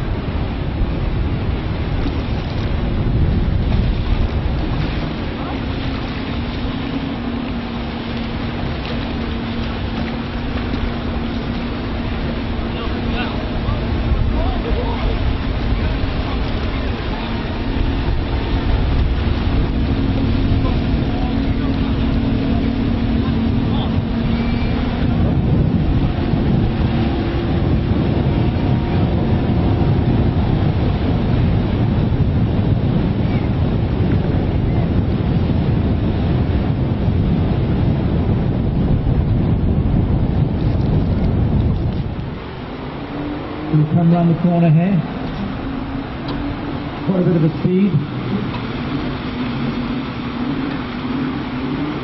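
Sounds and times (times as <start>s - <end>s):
boat engines running at speed: 0.0s - 52.0s
rushing water: 0.0s - 52.0s
wind on microphone: 0.0s - 52.0s.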